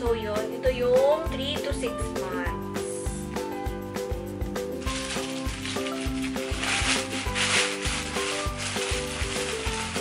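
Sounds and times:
background music with a beat: 0.1s - 10.0s
plastic and fabric rustling: 4.8s - 10.0s.

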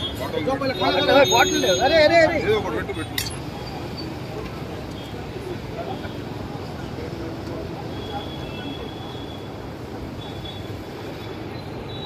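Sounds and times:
crowd hubbub: 0.0s - 12.0s.

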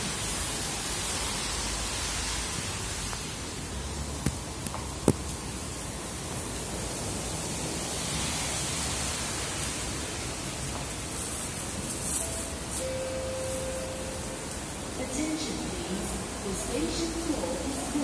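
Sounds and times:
heavy rain hissing: 0.0s - 18.0s.

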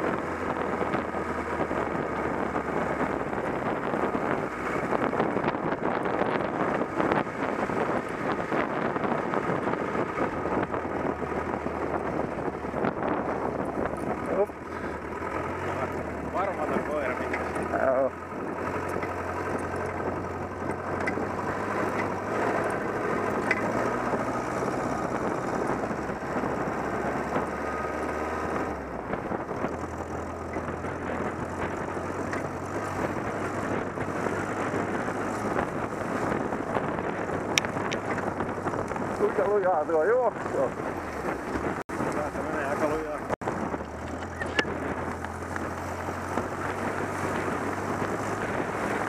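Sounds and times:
buggy engine running: 0.0s - 49.0s
wind on microphone: 0.0s - 49.0s.

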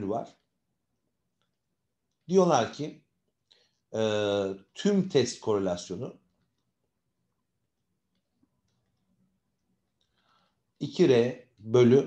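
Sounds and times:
man speaking: 0.0s - 0.4s, 2.3s - 3.0s, 4.0s - 6.1s, 10.8s - 12.0s
breath: 3.5s - 3.9s, 10.0s - 10.7s.

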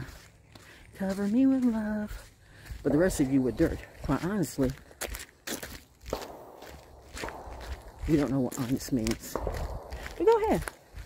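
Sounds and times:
footsteps on a trail: 0.0s - 11.0s.

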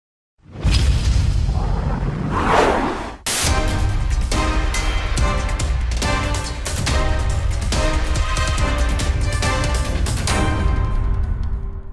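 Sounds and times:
whoosh sound effect: 1.6s - 3.5s
intro music: 3.3s - 11.8s
music with steady beat: 3.4s - 11.8s.

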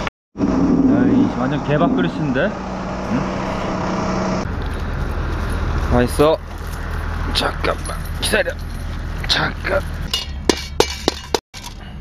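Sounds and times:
metal clinking against steel bowl: 10.1s - 11.8s.

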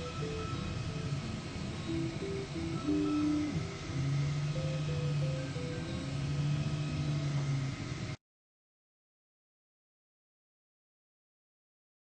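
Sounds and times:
stepper motors whining: 0.0s - 8.2s.

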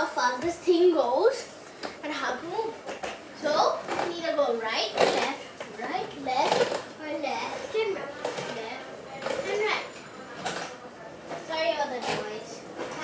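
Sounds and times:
children calling and chattering: 0.0s - 13.0s.

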